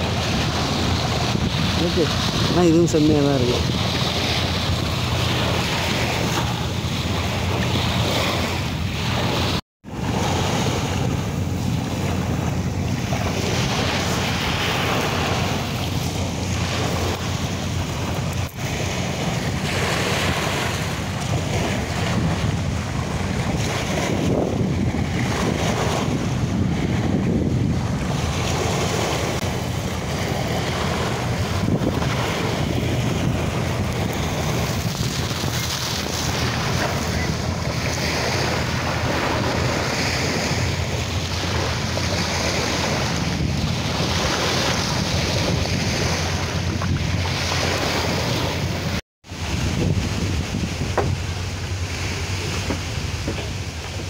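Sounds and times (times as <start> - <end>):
small waves breaking on beach: 0.0 - 54.0
wind buffeting microphone: 0.0 - 54.0.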